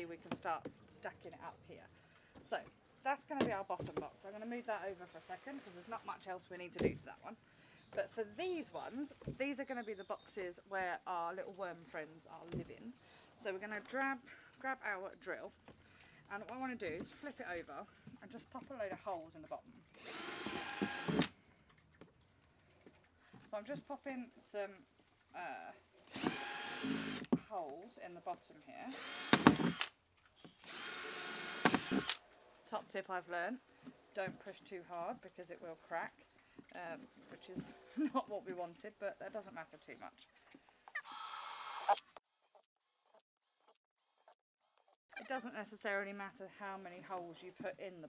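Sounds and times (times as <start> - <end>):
cordless drill boring plastic: 19.9 - 21.4, 26.1 - 27.4, 28.9 - 30.0, 30.6 - 32.2, 40.9 - 42.2.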